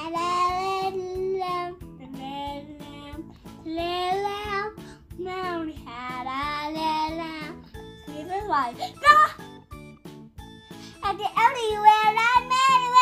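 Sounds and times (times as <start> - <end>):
child singing: 0.0 - 7.6, 11.0 - 13.0.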